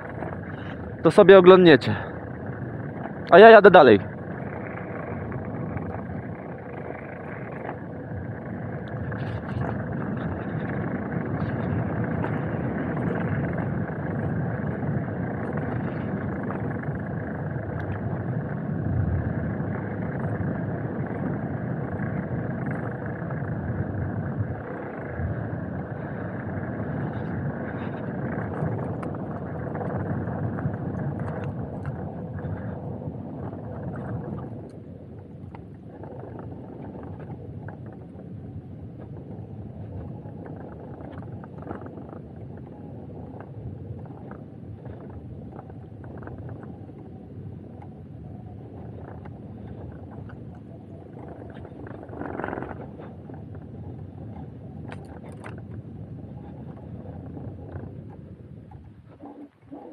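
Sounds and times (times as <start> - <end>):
wind noise: 0.0 - 59.9.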